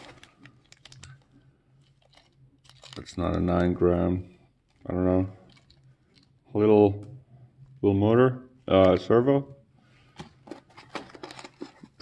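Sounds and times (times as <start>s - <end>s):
foam and plastic bags rustling: 0.0s - 3.6s.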